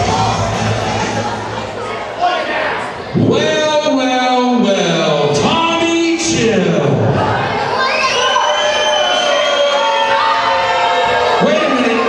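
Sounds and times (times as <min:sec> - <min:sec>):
small crowd cheering and shouting: 0:07.0 - 0:12.0
children's high voices: 0:07.2 - 0:12.0
high yell: 0:07.2 - 0:12.0.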